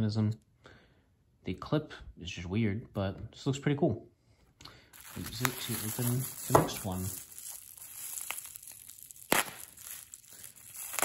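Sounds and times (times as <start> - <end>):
bubble wrap crinkling: 5.0 - 11.0
knife cutting bubble wrap: 5.1 - 11.0.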